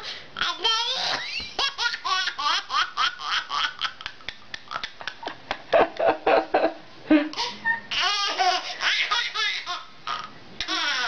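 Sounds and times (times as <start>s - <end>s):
toddler laughing and squealing: 0.6s - 3.9s, 7.4s - 11.0s.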